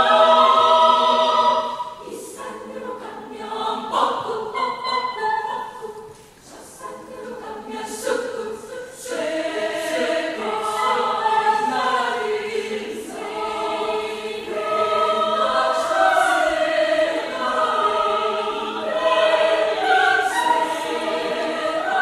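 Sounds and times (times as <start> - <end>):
women's choir singing in harmony: 0.0 - 22.0.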